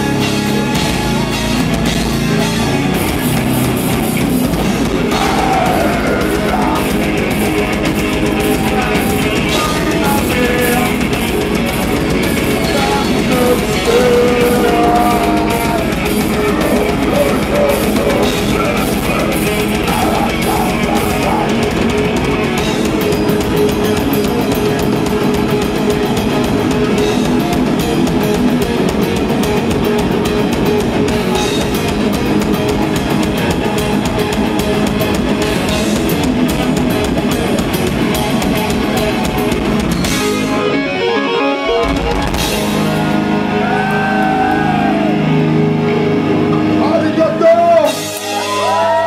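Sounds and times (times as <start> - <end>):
fast drumming: 0.0 - 40.6, 41.8 - 45.0
distorted electric guitars: 0.0 - 49.0.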